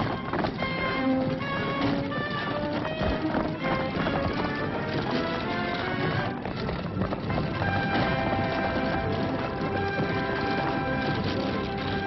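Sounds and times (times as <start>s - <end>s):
film score held notes: 0.0s - 12.0s
horse hooves galloping: 0.0s - 12.0s.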